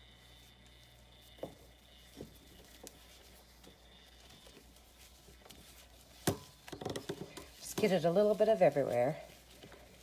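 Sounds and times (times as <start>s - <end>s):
person speaking: 7.4s - 9.5s.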